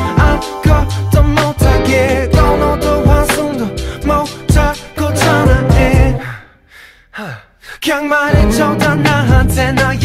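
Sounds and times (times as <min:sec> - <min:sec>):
song with beat and vocals: 0:00.0 - 0:06.5, 0:07.8 - 0:10.0
breathy gasp: 0:06.2 - 0:07.8.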